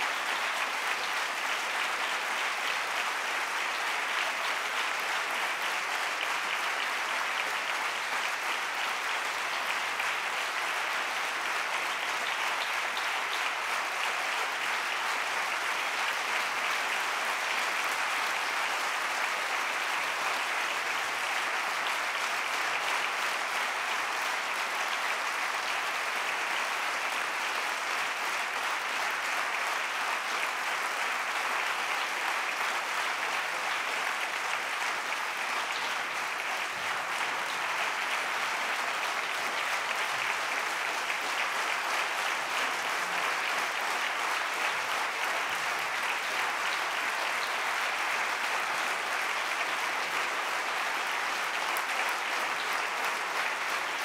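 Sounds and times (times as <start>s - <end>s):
large audience applauding: 0.0s - 54.0s.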